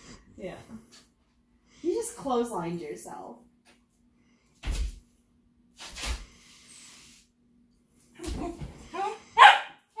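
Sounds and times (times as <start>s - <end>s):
dog barking: 9.4s - 9.8s.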